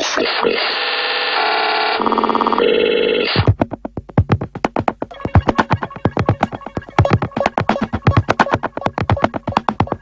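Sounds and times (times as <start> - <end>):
rapid short synth stabs: 4.3 - 10.0.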